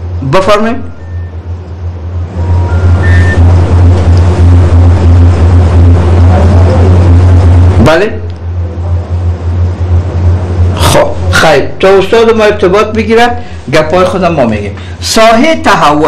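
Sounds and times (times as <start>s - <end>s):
telephone line hum and hiss: 0.0s - 16.0s
short faint beeps: 0.9s - 1.4s, 2.4s - 3.6s.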